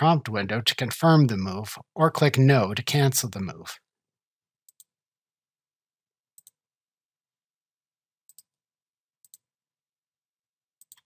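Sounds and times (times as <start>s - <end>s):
computer mouse clicks: 4.7s - 4.9s, 6.4s - 6.6s, 8.3s - 8.5s, 9.2s - 9.4s, 10.8s - 11.0s.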